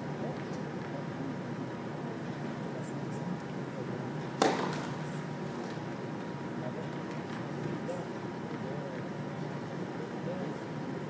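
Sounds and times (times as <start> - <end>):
room hum: 0.0 - 11.0
racket striking tennis ball: 4.4 - 5.0.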